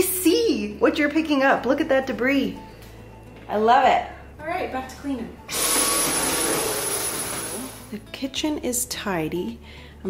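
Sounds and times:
stick vacuum running: 0:05.5 - 0:07.9.

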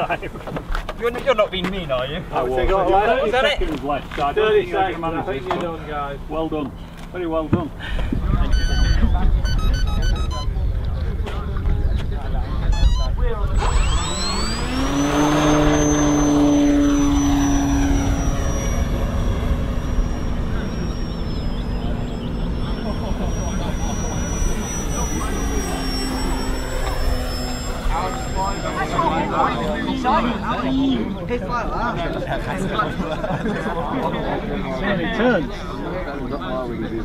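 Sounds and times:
model aeroplane motor whine: 0:12.7 - 0:31.6
low rumble: 0:13.6 - 0:30.4.

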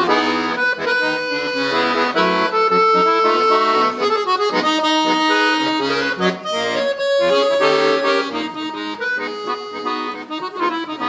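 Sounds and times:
accordion playing: 0:00.0 - 0:11.0.

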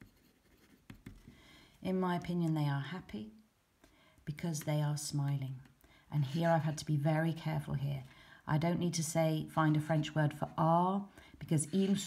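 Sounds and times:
pen scratching on paper: 0:00.0 - 0:01.3
person speaking: 0:01.8 - 0:03.4, 0:04.2 - 0:12.0.

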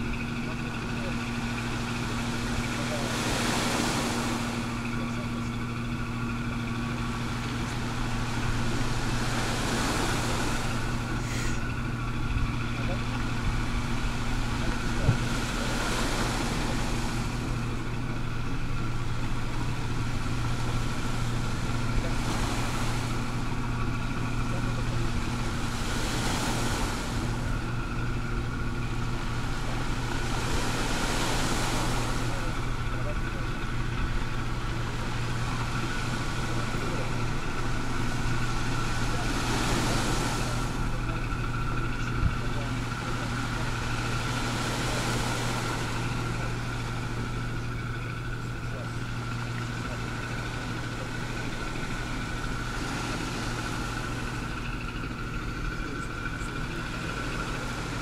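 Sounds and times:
low engine hum: 0:00.0 - 0:58.0
waves washing onto pebbles: 0:05.7 - 0:58.0.

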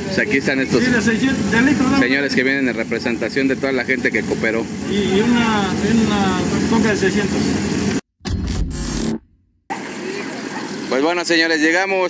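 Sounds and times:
vehicle engine running: 0:00.0 - 0:08.0.

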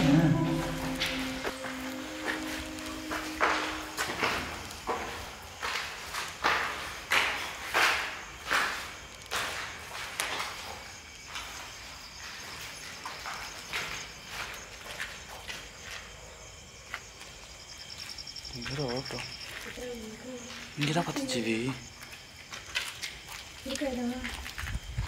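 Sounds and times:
held low music tone: 0:00.0 - 0:04.9
footsteps walking: 0:00.0 - 0:25.0.

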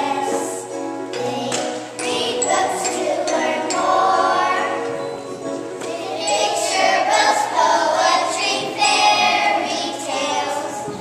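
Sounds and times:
young children singing in unison: 0:00.0 - 0:11.0.

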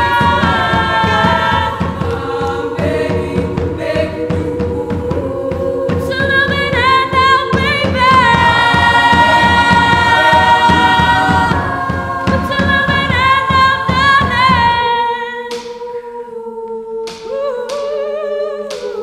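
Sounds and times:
low rhythmic pulse: 0:00.0 - 0:15.6
women's choir singing: 0:00.0 - 0:19.0.

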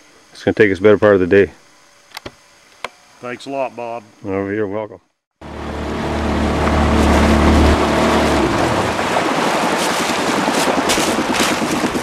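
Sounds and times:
outboard motor humming: 0:05.4 - 0:12.0
wind and water hiss: 0:05.8 - 0:12.0.

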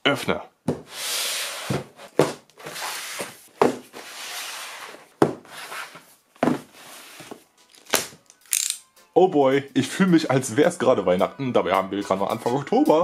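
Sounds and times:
cardboard scraping on tabletop: 0:00.8 - 0:07.4
cardboard boxes knocking on table: 0:01.6 - 0:04.1, 0:05.2 - 0:07.4.

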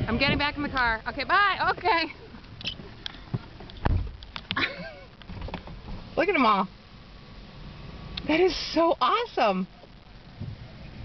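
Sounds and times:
deep thump: 0:03.3 - 0:04.2, 0:10.4 - 0:10.6.

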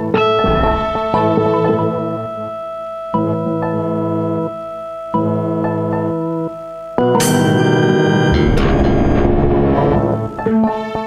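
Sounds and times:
deep low synth layer: 0:00.2 - 0:02.0.

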